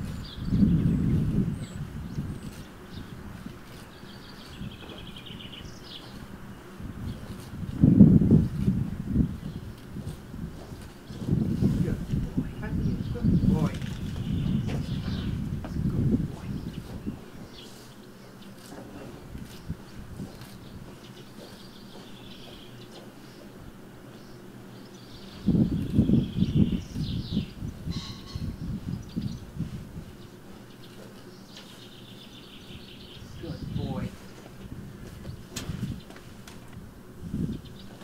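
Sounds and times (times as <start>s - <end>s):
uneven low rumbling: 0.0s - 17.7s
small birds chirping: 0.0s - 38.0s.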